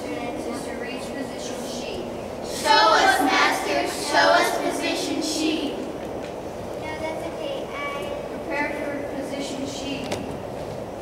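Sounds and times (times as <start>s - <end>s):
low hall rumble: 0.0s - 11.0s.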